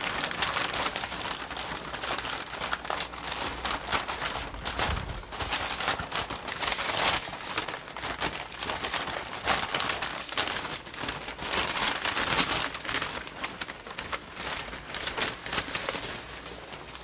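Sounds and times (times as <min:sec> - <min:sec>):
paper rustling and crinkling: 0:00.0 - 0:17.0.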